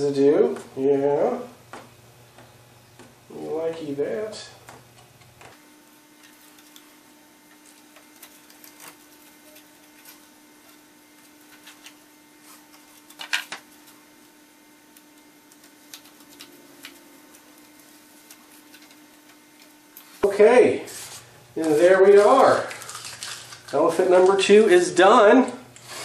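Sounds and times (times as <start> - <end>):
paper crinkling and crumpling: 7.5 - 14.0, 15.4 - 20.2, 20.9 - 24.8.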